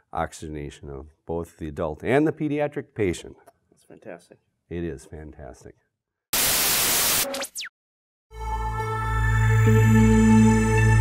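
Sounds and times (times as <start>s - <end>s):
white noise static hiss: 6.4s - 7.2s
glitchy tone: 6.4s - 7.7s.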